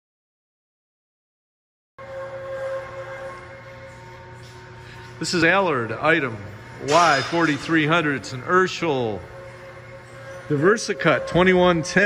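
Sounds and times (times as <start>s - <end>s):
mechanical hum: 2.0s - 12.0s.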